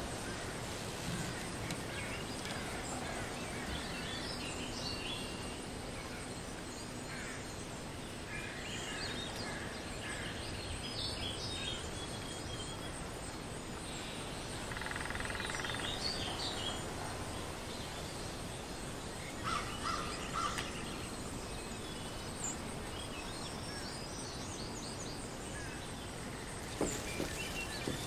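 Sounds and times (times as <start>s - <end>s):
forest background noise: 0.0s - 28.0s.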